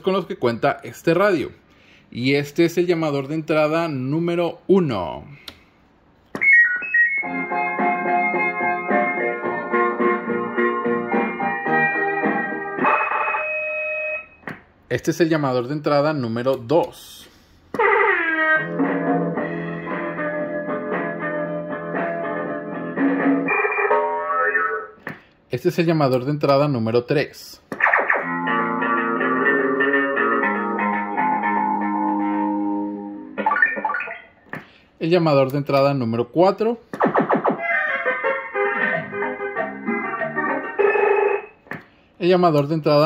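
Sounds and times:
electronic caller tune: 6.4 - 7.5, 12.8 - 14.4.

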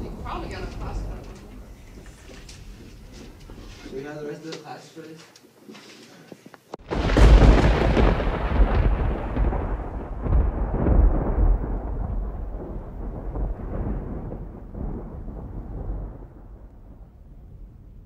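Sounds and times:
thunder rumbling: 0.0 - 3.7, 6.8 - 18.0.

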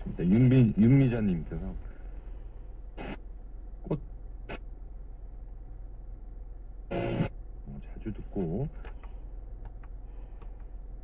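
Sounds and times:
car radio speech: 0.0 - 2.2, 3.8 - 4.7, 7.0 - 8.9
car engine idling: 0.0 - 11.0.

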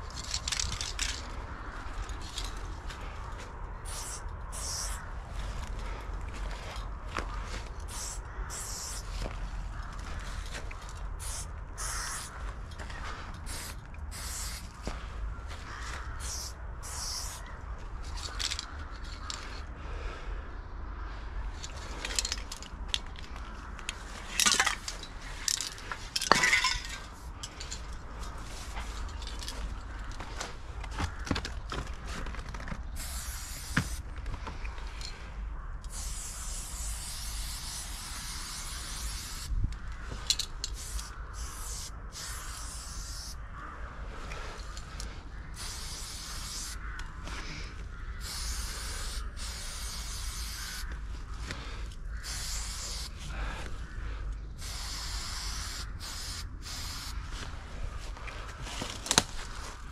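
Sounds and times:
spray paint can hissing: 3.8 - 5.1, 7.8 - 9.2, 11.2 - 12.4, 13.5 - 14.7, 16.2 - 17.4, 33.0 - 34.0, 35.9 - 39.5, 40.4 - 43.4, 45.6 - 46.8, 48.2 - 50.9, 52.2 - 53.2, 54.6 - 57.2.

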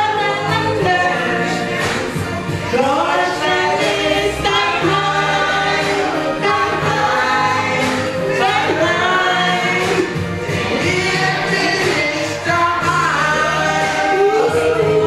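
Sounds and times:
amplified musical accompaniment: 0.0 - 15.0
women singing into microphones: 0.0 - 15.0.

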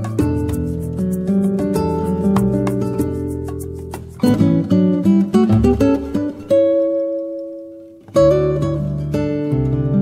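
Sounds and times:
acoustic guitar plucked notes: 0.0 - 10.0.

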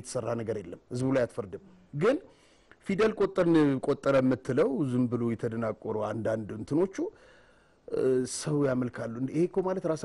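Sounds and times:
man talking: 0.0 - 7.2, 7.9 - 10.0.

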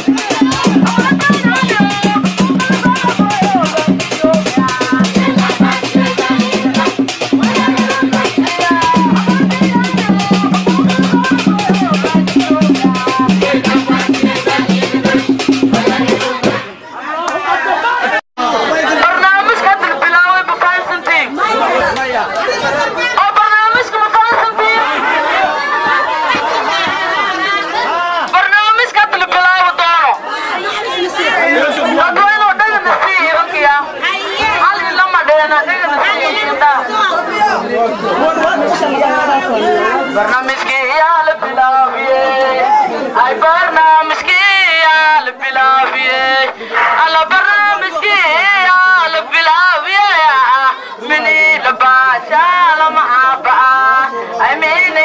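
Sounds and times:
woman talking through megaphone: 0.0 - 16.8, 18.9 - 27.7, 28.3 - 42.4
voices chattering: 0.0 - 55.0.

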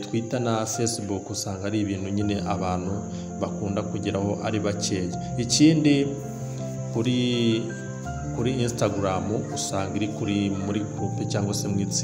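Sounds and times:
background music: 0.0 - 12.0
thin steady high tone: 0.0 - 12.0
person narrating: 7.0 - 12.0.

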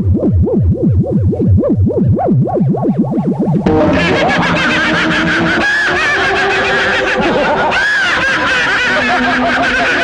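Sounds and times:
steady low tone: 0.0 - 7.7
crowd cackling with laughter: 3.7 - 10.0.

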